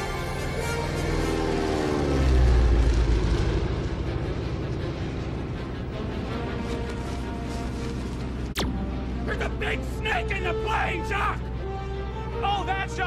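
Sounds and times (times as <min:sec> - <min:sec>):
orchestral film score: 0:00.0 - 0:13.0
seaplane engine taking off: 0:00.0 - 0:13.0.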